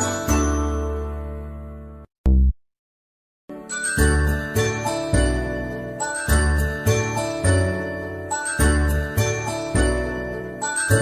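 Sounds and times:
bell-like melody: 0.0 - 1.9, 3.5 - 11.0
bass notes beat: 2.2 - 2.6.

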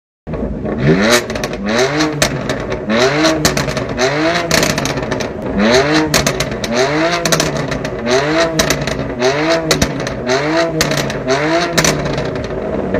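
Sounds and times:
car engine revving: 0.3 - 12.9
exhaust crackling and popping: 0.3 - 12.9.

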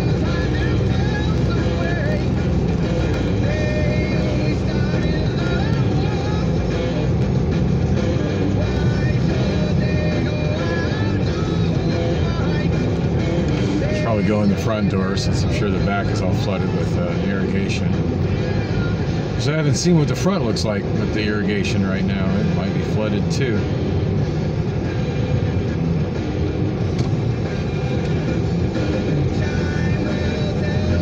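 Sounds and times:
car engine and road noise: 0.0 - 31.0
rock music on car stereo: 0.0 - 31.0.

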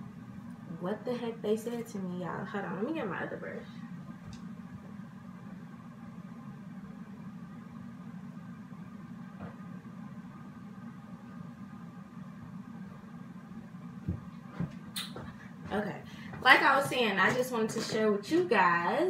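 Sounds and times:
low background hum: 0.0 - 19.0.

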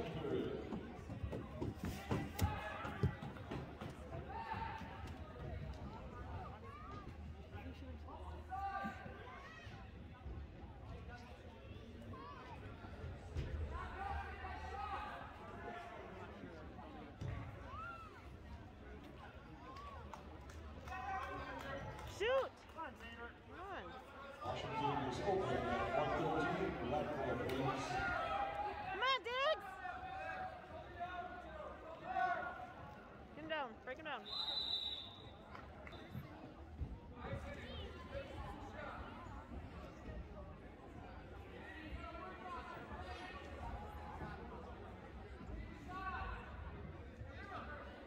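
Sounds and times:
spectators chattering: 0.0 - 48.0.

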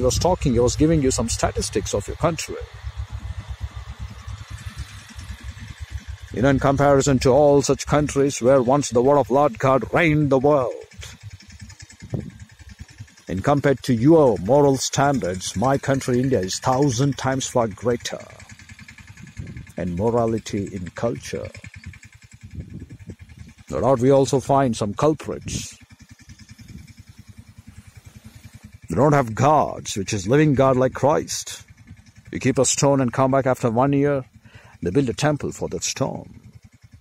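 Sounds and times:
low background rumble: 0.0 - 37.0.

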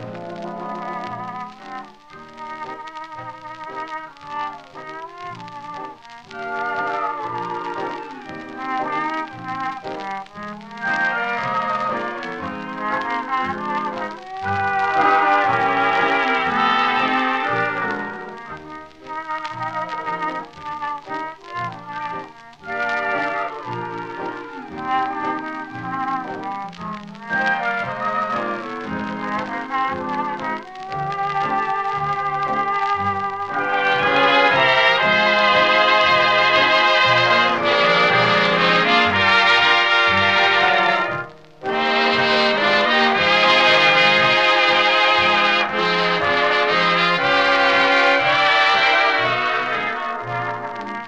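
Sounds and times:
old orchestral recording with brass: 0.0 - 51.0.

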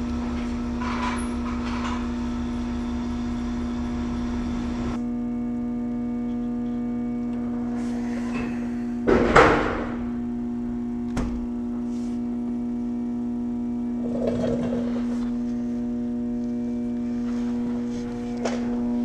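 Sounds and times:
pump motor buzzing hum: 0.0 - 19.0.

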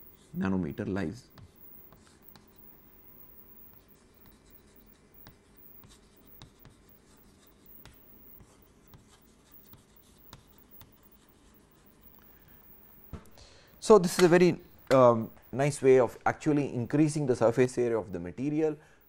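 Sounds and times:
chalk scratching on chalkboard: 1.3 - 13.0.

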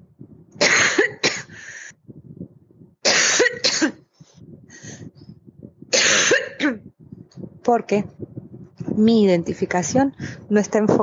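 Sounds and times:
person coughing: 0.6 - 1.6, 3.0 - 4.0, 5.9 - 6.8.

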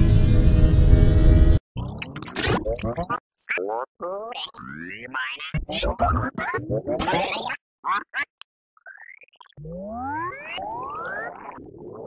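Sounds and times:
warped cartoon voice: 1.8 - 12.0.

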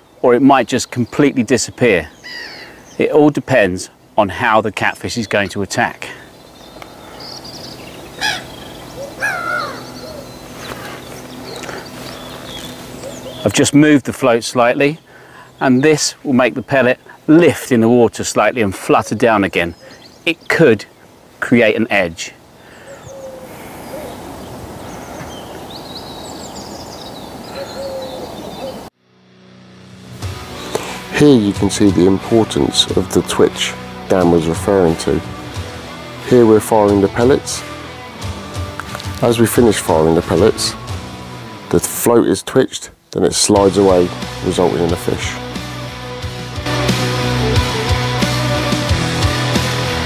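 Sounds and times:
birds calling: 0.0 - 29.0, 30.2 - 50.0
faint low cooing bird call: 2.2 - 3.0, 8.2 - 13.5, 22.6 - 28.9
steady background rush: 6.2 - 13.5
music: 29.0 - 42.3, 43.3 - 50.0.

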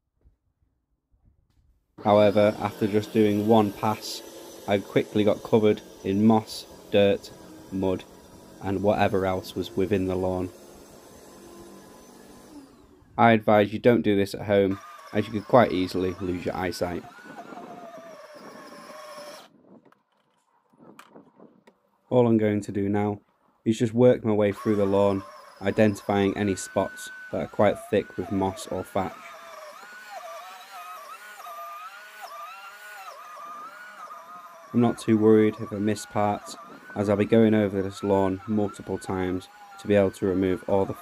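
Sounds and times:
lawn scarifier motor hum: 2.0 - 13.2, 14.5 - 19.5, 24.4 - 41.0.

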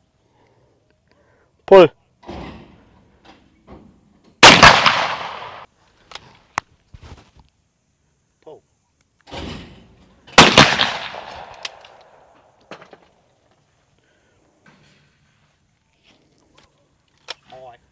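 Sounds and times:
shotgun shots with echo: 4.4 - 5.7, 10.4 - 11.8
light gun clicks: 16.6 - 17.5.

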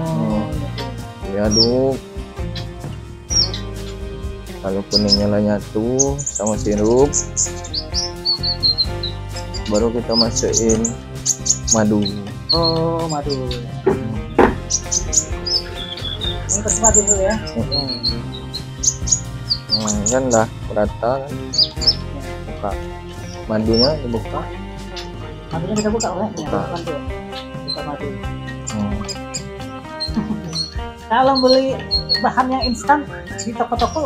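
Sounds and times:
person speaking: 0.0 - 2.0, 9.7 - 11.0, 11.7 - 14.4, 16.4 - 18.4, 19.7 - 21.1, 25.5 - 29.1
background music: 0.0 - 34.0
bird chirping high notes: 0.0 - 34.0.

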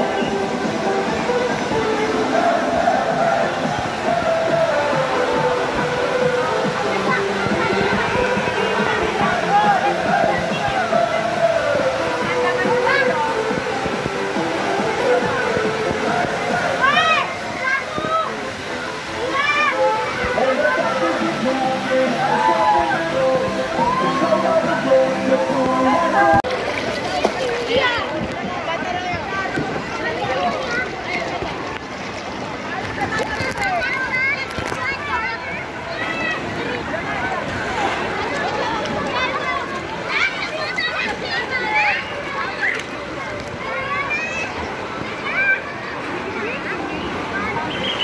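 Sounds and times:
music playing: 0.0 - 26.7
crowd of voices: 0.0 - 48.0
running water: 0.0 - 48.0
people shouting: 2.1 - 13.3, 19.2 - 26.4.

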